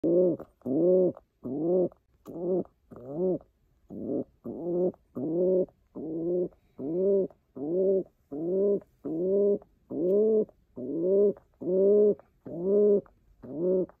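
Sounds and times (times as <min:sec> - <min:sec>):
pigeon cooing: 0:00.0 - 0:14.0.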